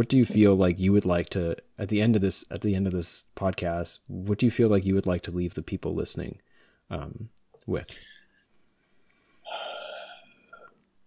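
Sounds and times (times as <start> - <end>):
man speaking: 0.0 - 8.2
man breathing in: 8.2 - 10.6.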